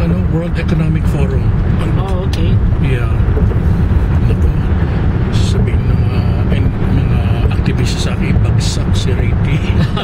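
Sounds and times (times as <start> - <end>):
tyre and engine rumble: 0.0 - 10.0.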